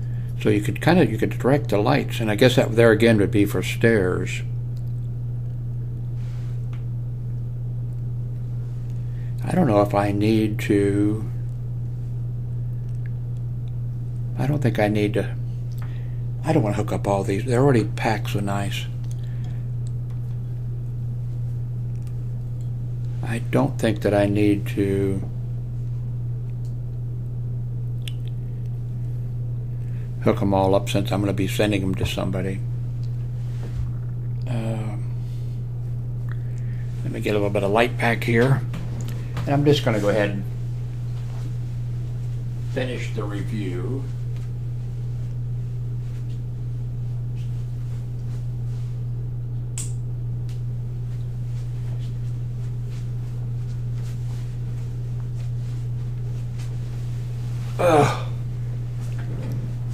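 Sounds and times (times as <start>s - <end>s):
steady low hum: 0.0s - 59.9s.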